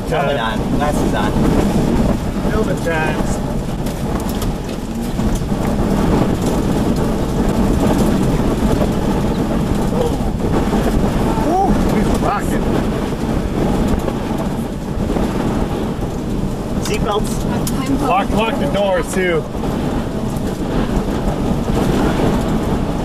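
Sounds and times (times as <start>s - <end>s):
rain buffeting a vehicle: 0.0s - 23.0s
strong wind rushing: 0.0s - 23.0s.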